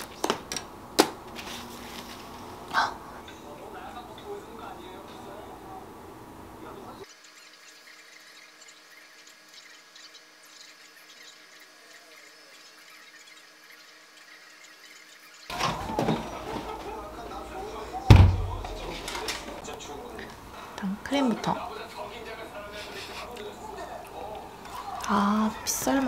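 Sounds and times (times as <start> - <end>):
plastic container rustling: 15.5 - 19.6
loud knock on table: 18.1 - 18.5.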